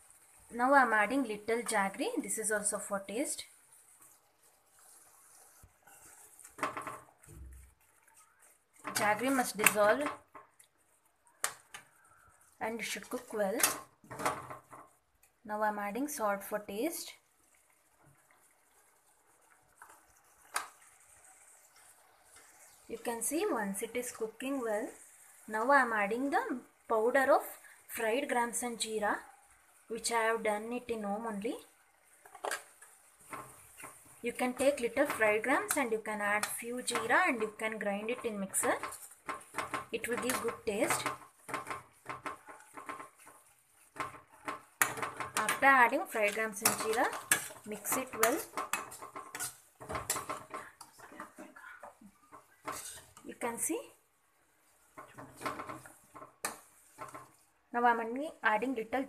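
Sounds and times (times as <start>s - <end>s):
faint steady hiss: 0.0s - 59.0s
steel spoon tapping pan: 8.8s - 10.6s, 32.2s - 53.2s, 54.9s - 57.4s.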